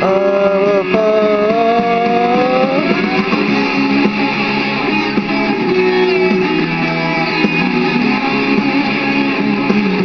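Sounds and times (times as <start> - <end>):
dense rock guitar backing: 0.0 - 10.0
long held distorted note: 0.0 - 10.0.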